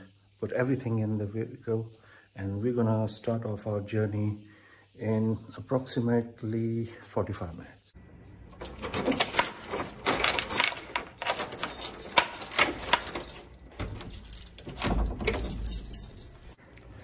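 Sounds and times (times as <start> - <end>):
keys jangling: 8.5 - 16.6
key worked in door lock: 8.6 - 16.6.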